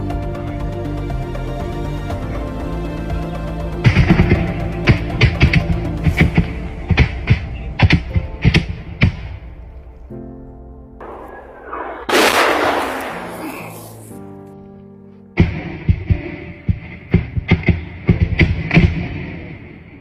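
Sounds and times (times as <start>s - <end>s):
background music: 0.0s - 20.0s
gunshots: 11.0s - 14.2s.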